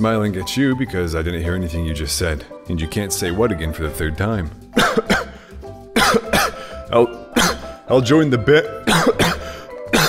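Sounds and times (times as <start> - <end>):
soft background music: 0.0 - 10.0
person coughing hard: 4.8 - 5.4, 6.0 - 6.8, 7.4 - 7.8, 8.8 - 10.0.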